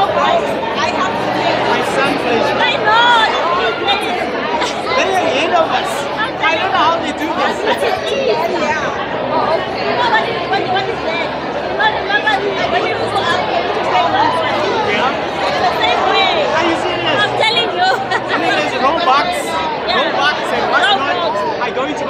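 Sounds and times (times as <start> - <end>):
people laughing: 0.0 - 21.2
crowd chatter: 0.0 - 22.0.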